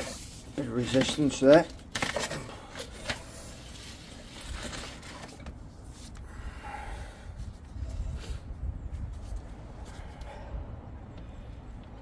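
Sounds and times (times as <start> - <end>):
steady low rumble: 5.6 - 12.0.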